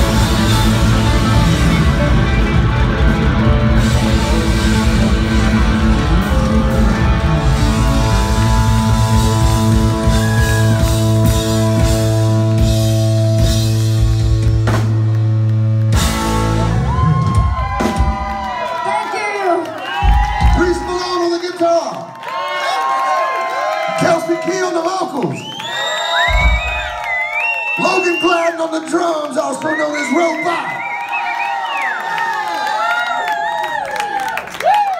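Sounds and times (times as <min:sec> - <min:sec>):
audience cheering and whooping: 0:00.0 - 0:11.8, 0:16.0 - 0:34.9
live rock band playing: 0:00.0 - 0:18.6.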